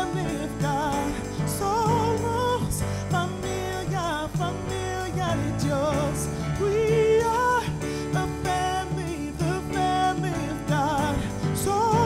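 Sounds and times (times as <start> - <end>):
drums: 0.0 - 12.0
keyboard: 0.0 - 12.0.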